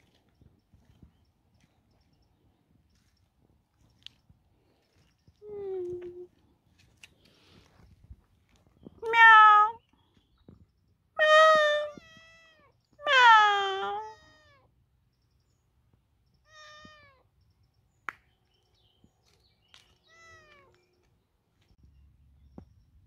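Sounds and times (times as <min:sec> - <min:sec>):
kitten meowing: 0:09.0 - 0:09.8, 0:11.2 - 0:14.6.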